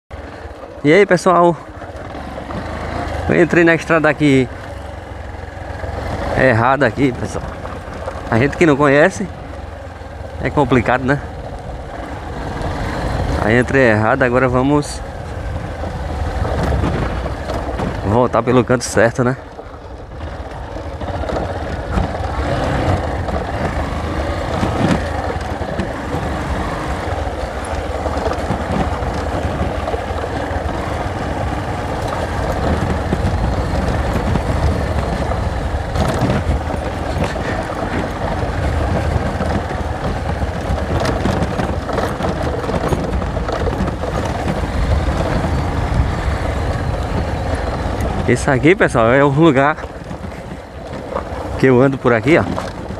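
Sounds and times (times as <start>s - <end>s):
motorcycle engine running: 0.1s - 52.9s
road and wind noise: 0.1s - 52.9s.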